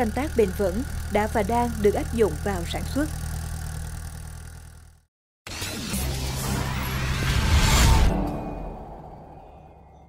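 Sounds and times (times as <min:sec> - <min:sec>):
engine humming: 0:00.0 - 0:05.1.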